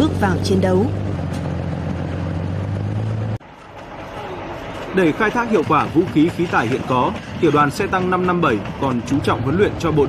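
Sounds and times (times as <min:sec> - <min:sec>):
tank engine humming: 0:00.0 - 0:10.0.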